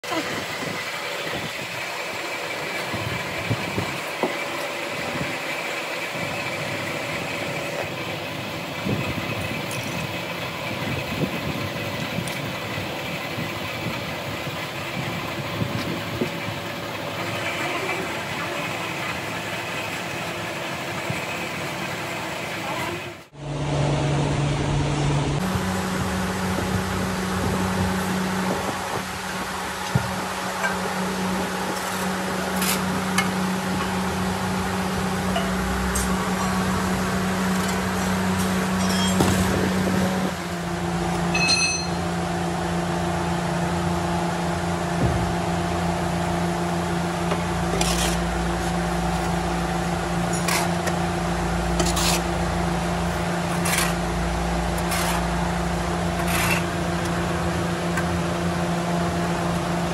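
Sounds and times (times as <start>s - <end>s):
machine drone with low hum: 0.0s - 59.9s
workshop machinery noise: 0.0s - 59.9s.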